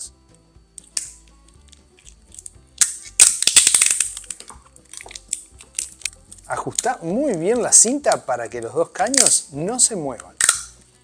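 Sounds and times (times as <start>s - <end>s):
soft music: 0.0s - 11.0s
packing tape crackling off roll: 0.8s - 8.2s.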